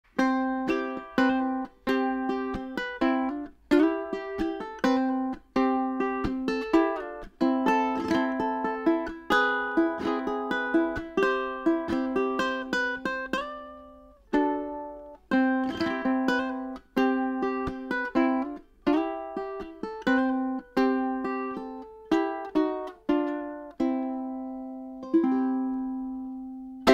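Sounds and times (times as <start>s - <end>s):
ukulele chords plucked and strummed: 0.1s - 26.9s.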